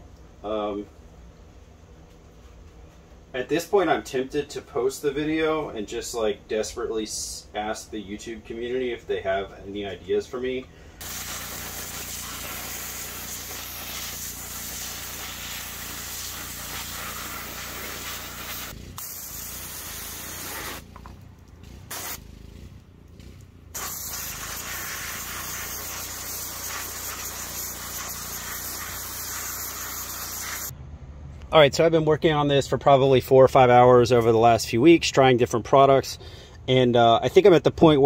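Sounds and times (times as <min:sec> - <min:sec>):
pressure washer spray hissing: 0:11.0 - 0:22.3, 0:23.7 - 0:30.7.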